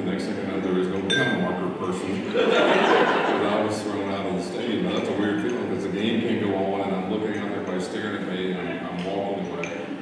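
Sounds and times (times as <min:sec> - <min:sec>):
man talking: 0:00.0 - 0:02.5, 0:03.1 - 0:10.0
people laughing: 0:02.0 - 0:04.8.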